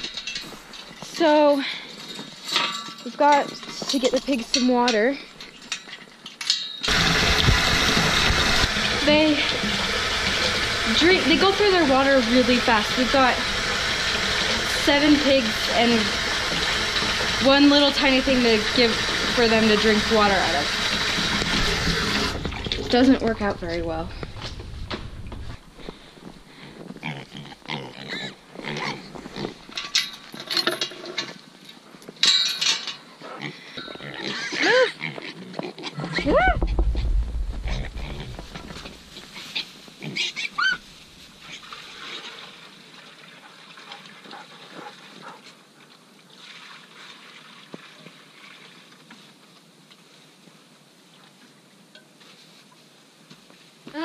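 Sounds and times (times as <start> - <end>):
pigs grunting and squealing: 26.5 - 29.6, 33.2 - 36.8, 37.6 - 40.8
knocks and clatter: 36.6 - 39.2.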